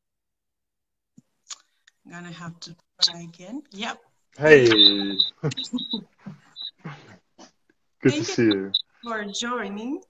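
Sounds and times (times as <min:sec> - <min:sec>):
person greeting: 0:04.4 - 0:05.6, 0:08.0 - 0:08.8
person laughing softly: 0:04.5 - 0:07.2, 0:08.1 - 0:08.7.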